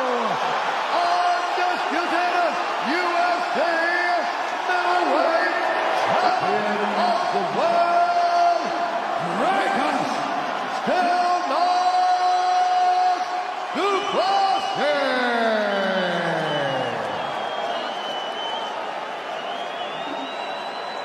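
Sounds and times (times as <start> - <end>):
arena crowd noise: 0.0 - 21.0.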